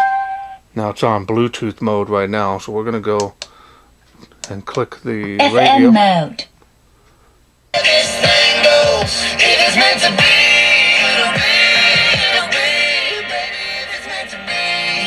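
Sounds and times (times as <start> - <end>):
song with singing on radio: 7.7 - 15.0.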